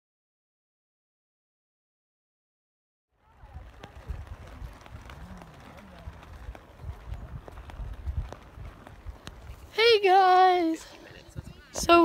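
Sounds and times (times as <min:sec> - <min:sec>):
wind rumbling on microphone: 0:03.2 - 0:09.8.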